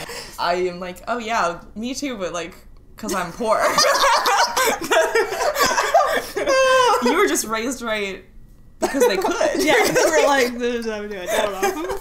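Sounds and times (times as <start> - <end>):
woman speaking: 0.4 - 4.0, 7.0 - 8.3, 8.9 - 12.0
woman laughing: 3.5 - 7.4, 8.8 - 10.6, 11.2 - 12.0.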